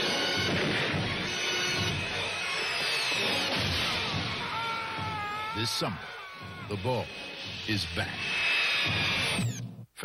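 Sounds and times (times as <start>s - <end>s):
shrill whirring hiss: 0.0s - 9.6s.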